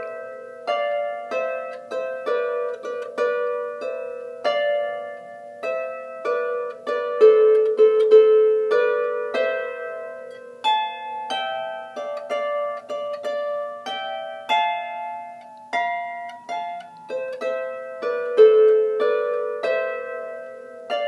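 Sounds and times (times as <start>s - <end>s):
harp playing slow melody: 0.0s - 21.0s.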